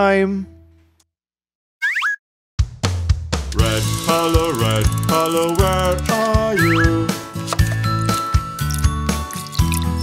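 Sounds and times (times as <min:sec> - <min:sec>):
drum hits of children's song: 0:02.6 - 0:04.5
cartoon rising pitch effect: 0:06.6 - 0:07.0.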